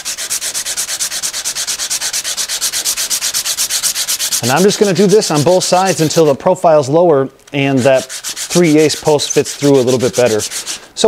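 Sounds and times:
washer rubbing on sandpaper: 0.0 - 6.4, 7.7 - 11.0.

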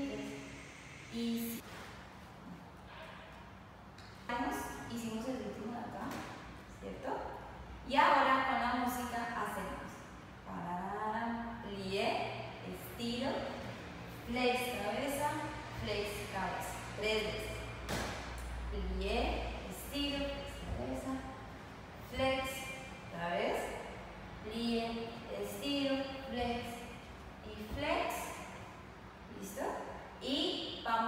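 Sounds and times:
woman's voice: 0.0 - 0.5, 1.1 - 1.6, 4.3 - 13.5, 14.1 - 17.7, 18.7 - 21.4, 22.0 - 28.5, 29.3 - 31.0.

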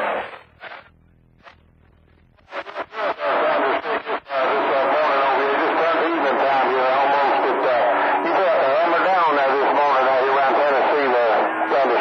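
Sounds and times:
unintelligible speech over radio: 2.8 - 12.0.

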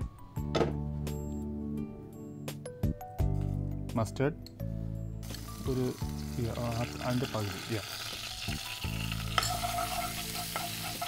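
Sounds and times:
oil sizzling: 5.2 - 11.0.

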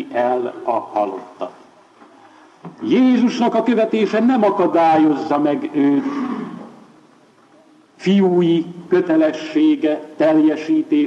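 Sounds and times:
man speaking in echoing room: 0.0 - 1.7, 2.7 - 7.0, 8.0 - 11.0
recording hiss: 0.0 - 11.0.

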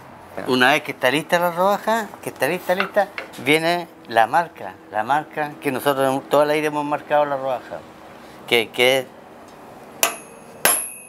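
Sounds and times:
hammer striking metal punch: 10.0 - 11.0
high metallic ringing: 10.0 - 11.0.

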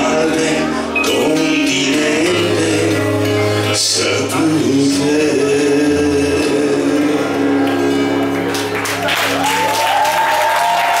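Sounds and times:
live band playing held chords: 0.0 - 11.0.

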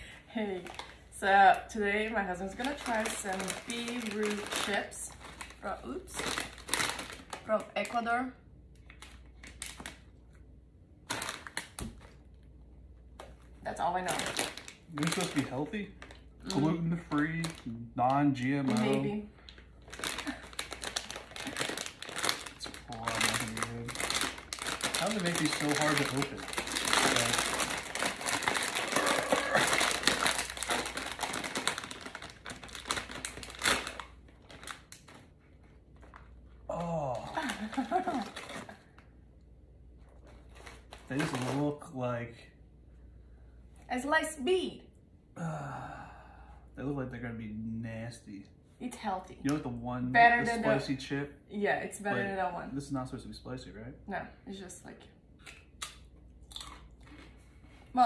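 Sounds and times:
chip bag crackling: 2.5 - 7.5, 11.0 - 12.2, 14.0 - 19.1, 19.8 - 35.4, 37.2 - 38.9, 40.4 - 41.9
man chewing crunchy chip: 19.9 - 34.2, 55.4 - 57.5.

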